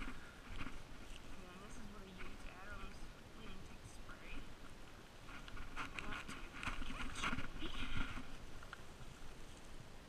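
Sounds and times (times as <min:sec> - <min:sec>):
goat hooves knocking and scrabbling: 0:05.2 - 0:09.4.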